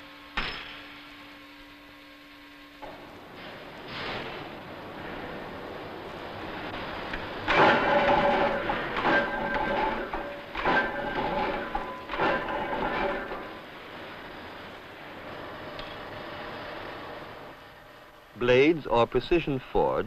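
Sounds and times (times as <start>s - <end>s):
steady machine noise: 0.0s - 19.1s
forging machine metallic strokes: 6.6s - 14.5s.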